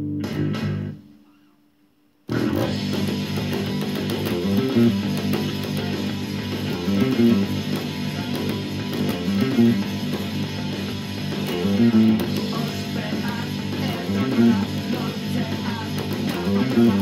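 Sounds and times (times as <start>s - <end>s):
rock band playing: 0.0s - 1.0s, 2.3s - 17.0s
fingerstyle electric bass: 0.0s - 1.1s, 2.3s - 17.0s.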